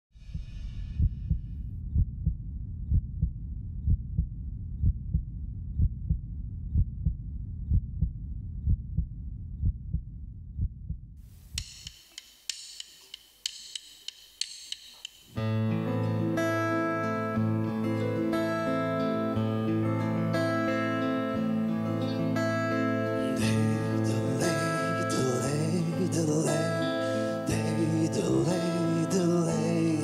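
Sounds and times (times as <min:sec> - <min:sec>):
deep heartbeat thumps: 0:00.1 - 0:11.2
low rumble: 0:00.1 - 0:11.2
scattered clicks: 0:11.6 - 0:15.4.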